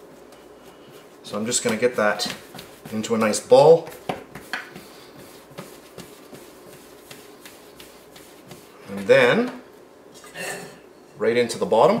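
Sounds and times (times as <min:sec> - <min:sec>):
hands rubbing dough: 0:00.0 - 0:09.5.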